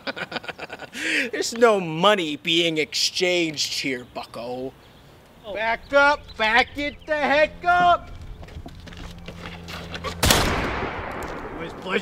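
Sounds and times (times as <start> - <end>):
gunshot with echo: 10.2 - 11.7.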